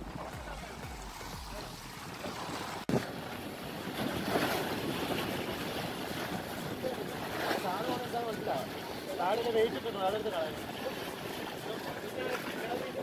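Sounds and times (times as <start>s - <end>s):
waves washing against rocks: 0.0s - 13.0s.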